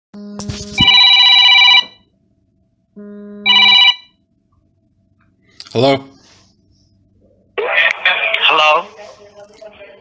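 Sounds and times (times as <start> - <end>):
electronic phone ringtone: 0.8 - 2.1, 3.4 - 4.2.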